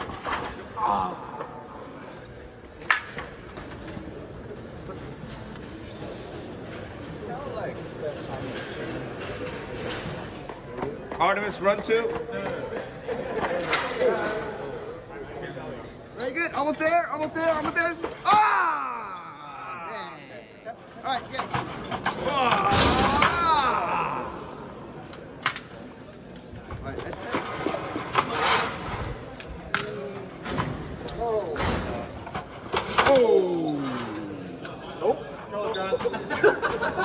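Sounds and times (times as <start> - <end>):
voices chattering: 3.9 - 28.1, 29.5 - 37.0.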